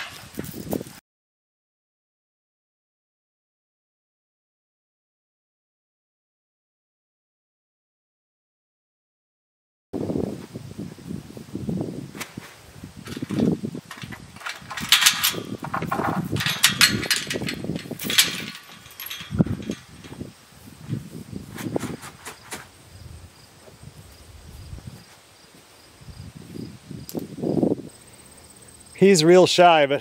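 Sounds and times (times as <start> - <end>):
metal gate clanking and rattling: 0.0 - 0.7, 13.0 - 22.6
shuffling: 12.1 - 22.8.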